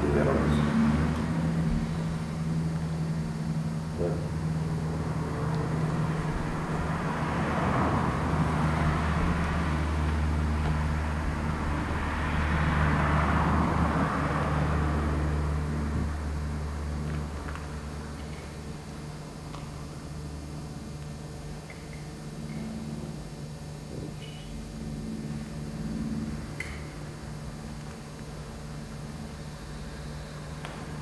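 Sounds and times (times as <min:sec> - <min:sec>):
low mechanical hum: 0:00.0 - 0:31.0.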